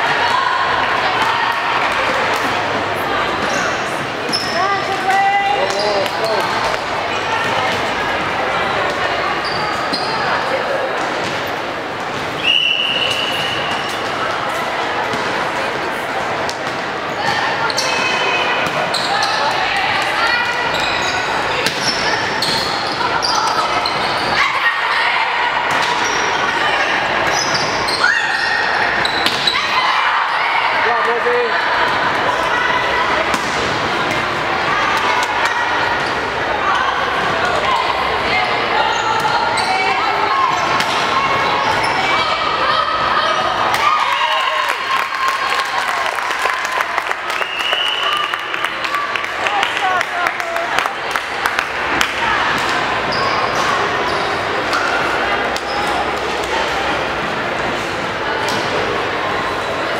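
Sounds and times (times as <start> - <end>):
crowd chatter: 0.0 - 59.9
players calling out: 0.0 - 59.9
sneakers squeaking on court: 3.4 - 4.9, 8.8 - 10.5, 17.2 - 19.6, 20.5 - 24.4, 27.2 - 29.7, 38.4 - 42.2, 53.0 - 56.3.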